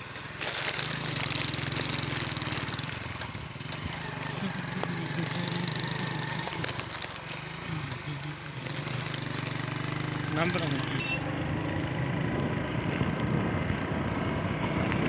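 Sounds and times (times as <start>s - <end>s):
road and wind noise: 0.0s - 15.0s
small vehicle engine running: 0.0s - 15.0s.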